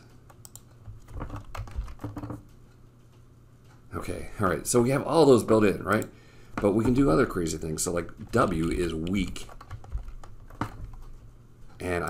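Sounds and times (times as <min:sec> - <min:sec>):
typing on computer keyboard: 0:00.4 - 0:02.4, 0:08.3 - 0:11.2.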